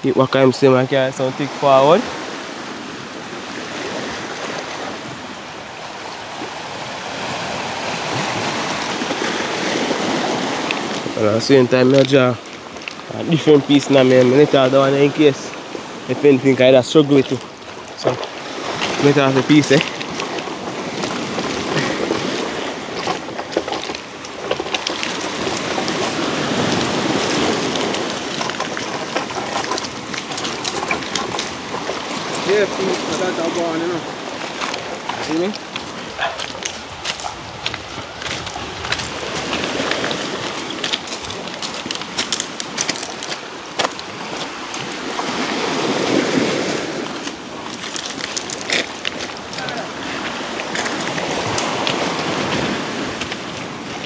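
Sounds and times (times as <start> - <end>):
waves washing onto pebble beach: 0.1 - 54.0
footsteps crunching on stones: 17.2 - 46.2, 47.1 - 53.6.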